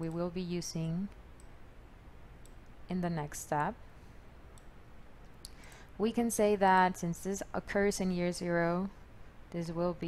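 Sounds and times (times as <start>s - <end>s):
woman speaking: 0.0s - 1.2s, 2.9s - 3.8s, 6.0s - 10.0s
low steady hum: 0.0s - 10.0s.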